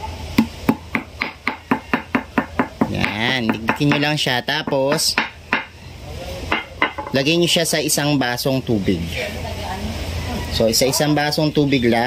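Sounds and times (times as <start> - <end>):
pestle knocking in stone mortar: 0.4 - 5.7, 6.5 - 7.2.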